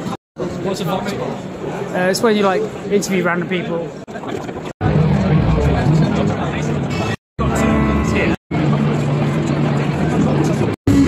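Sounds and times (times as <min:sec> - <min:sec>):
many people talking: 0:00.0 - 0:10.8.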